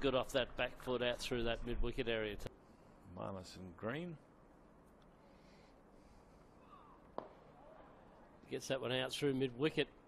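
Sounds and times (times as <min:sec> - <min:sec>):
faint ground ambience: 0:00.0 - 0:10.0
cricket bat striking ball: 0:07.2 - 0:07.5.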